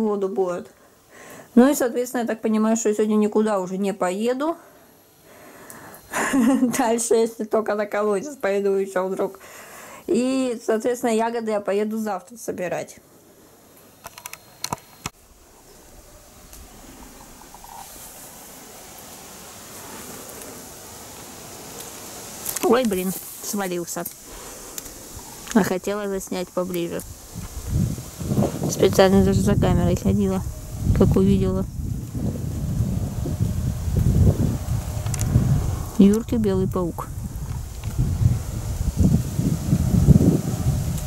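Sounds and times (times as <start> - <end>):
light rain hissing: 0.0 - 11.2, 15.1 - 41.0
faint rustling: 14.4 - 30.5
wind buffeting microphone: 24.3 - 41.0.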